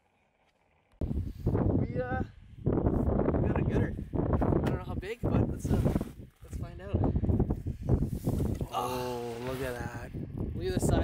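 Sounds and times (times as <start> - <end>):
wind buffeting microphone: 1.0 - 11.0
man's drawn-out exclamation: 8.7 - 9.9.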